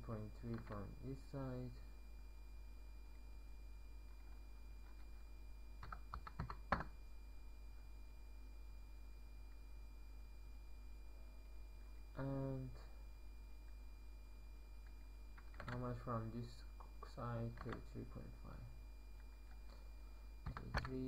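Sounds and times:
low electrical hum: 0.0 - 21.0
computer keyboard keystrokes: 0.5 - 0.8, 5.8 - 6.9, 15.4 - 15.8, 17.5 - 17.8, 20.4 - 21.0.

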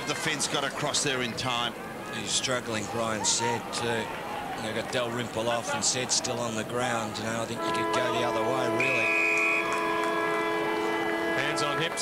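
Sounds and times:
stadium siren horn tone: 7.6 - 12.0.

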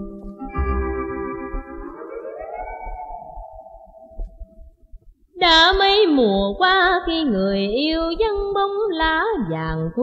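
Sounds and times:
sliding sustained melodic note: 0.0 - 4.6
chord dying away: 0.1 - 4.7.

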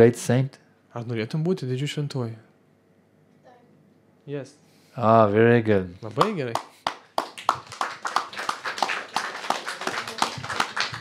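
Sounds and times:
audience hand clapping: 6.1 - 11.0.

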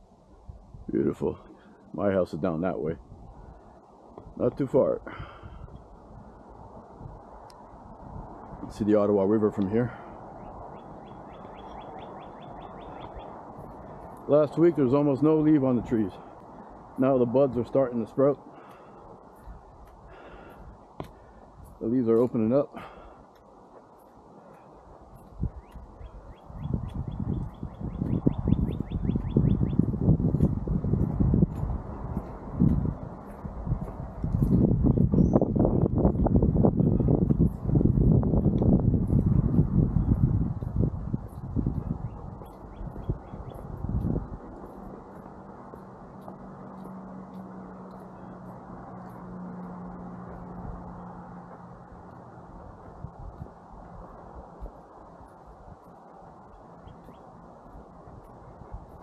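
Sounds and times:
wind rumbling on microphone: 0.0 - 59.0
faint bird chirps: 10.4 - 13.4, 24.5 - 29.9, 35.2 - 35.6.

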